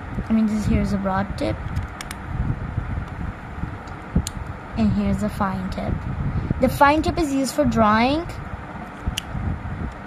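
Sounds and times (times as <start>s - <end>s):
marker handling rumble: 1.6s - 2.3s.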